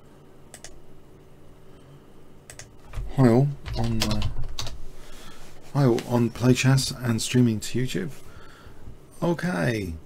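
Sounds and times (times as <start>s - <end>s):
computer keyboard keys clicking: 0.5s - 0.8s, 2.5s - 4.8s
man speaking: 3.0s - 4.4s, 5.7s - 8.2s.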